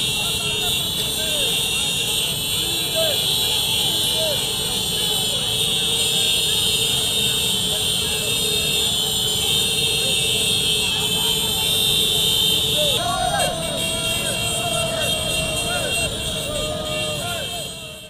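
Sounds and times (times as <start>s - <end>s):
crowd shouting: 0.0s - 18.0s
many motorcycle engines: 0.0s - 18.0s.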